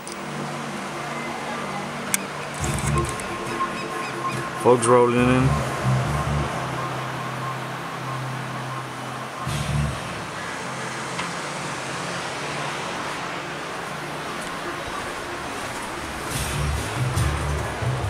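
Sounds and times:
car engine running: 0:02.6 - 0:04.6.

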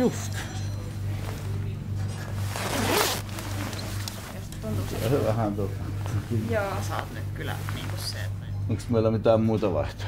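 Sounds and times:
steady low hum: 0:00.0 - 0:10.0
parka zipper rasping: 0:02.3 - 0:04.4.

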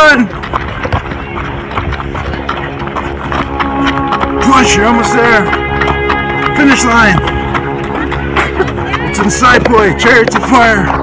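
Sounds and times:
running footsteps on pavement: 0:00.0 - 0:11.0.

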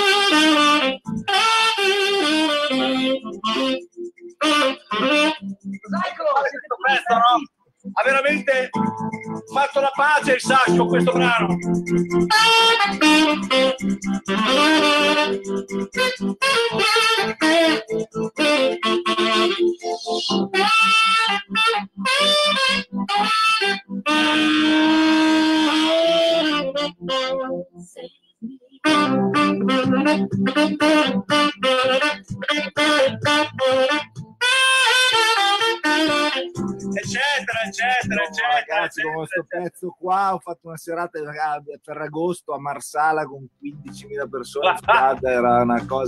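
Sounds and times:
saxophone playing pop melody: 0:00.0 - 0:28.0, 0:28.8 - 0:39.4, 0:43.7 - 0:46.0.

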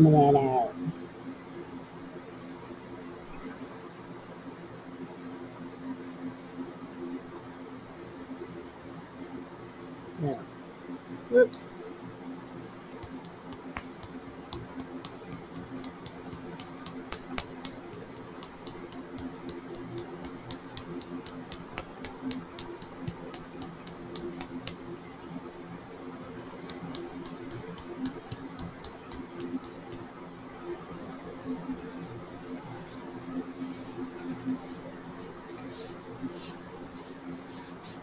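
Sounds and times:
low room hum: 0:00.0 - 0:38.0.

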